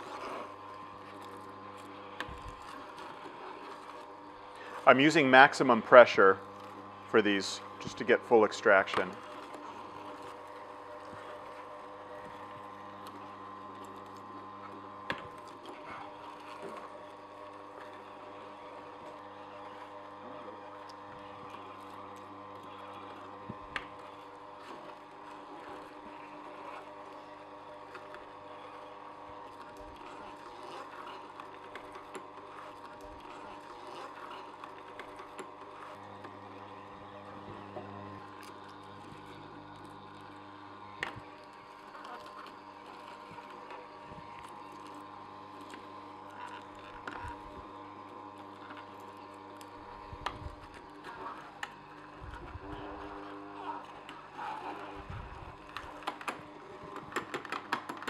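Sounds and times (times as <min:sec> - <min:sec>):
juicer motor humming: 0:00.0 - 0:58.0.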